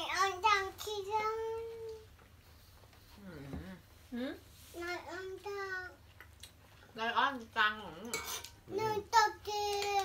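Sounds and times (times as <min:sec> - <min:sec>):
toddler singing: 0:08.7 - 0:10.0.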